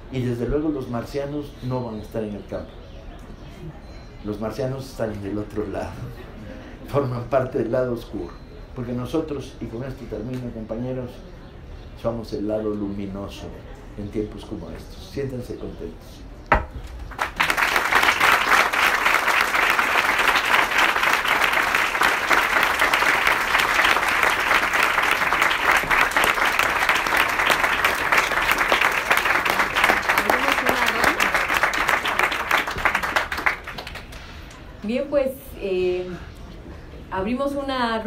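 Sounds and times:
audience applauding: 17.0s - 34.5s.

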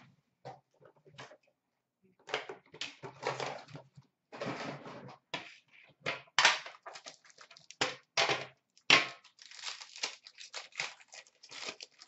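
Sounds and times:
plastic packaging crinkling: 6.8s - 7.8s, 8.8s - 12.0s.

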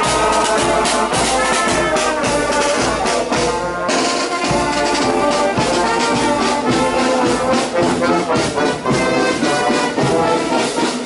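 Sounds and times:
marching band playing: 0.0s - 11.0s
snare and bass drums: 0.0s - 11.0s.

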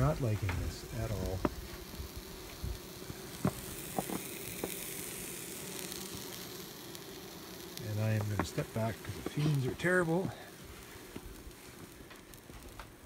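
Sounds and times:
bees humming: 0.0s - 13.0s
vaporizer sizzling: 0.0s - 13.0s.

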